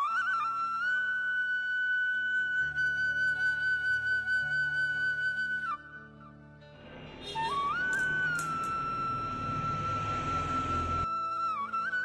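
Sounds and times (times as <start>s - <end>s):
flute holding a long note: 0.0s - 6.2s, 6.8s - 12.0s.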